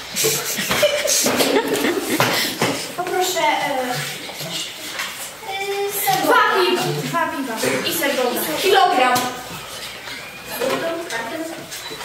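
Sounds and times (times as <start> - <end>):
footfalls on hard floor: 0.6 - 5.3
children's voices: 1.3 - 11.8.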